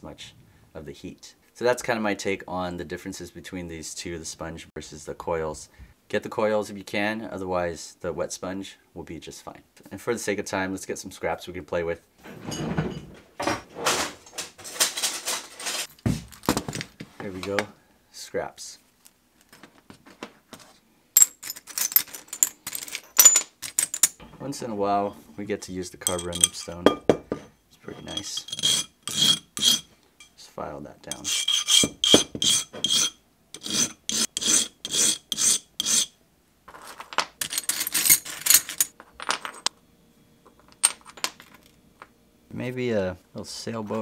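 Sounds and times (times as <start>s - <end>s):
glass pieces clinking: 21.2s - 24.2s, 26.0s - 27.4s, 28.0s - 30.4s, 36.7s - 39.7s, 40.5s - 41.8s
glass filed on a stone: 27.9s - 29.9s, 31.1s - 36.2s.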